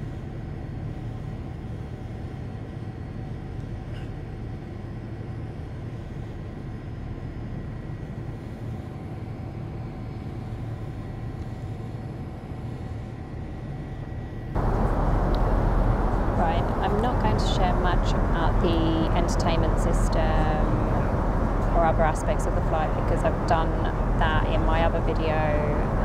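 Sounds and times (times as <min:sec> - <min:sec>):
jet engine rumble in cabin: 0:00.0 - 0:26.0
rushing air: 0:14.6 - 0:24.6
woman speaking: 0:16.3 - 0:21.0, 0:21.7 - 0:26.0.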